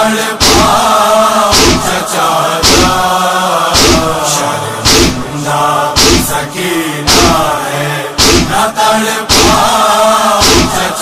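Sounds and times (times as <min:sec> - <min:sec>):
rhythmic chest-beating strokes: 0:00.0 - 0:07.6, 0:08.2 - 0:11.0
men chanting a lament: 0:00.0 - 0:11.0.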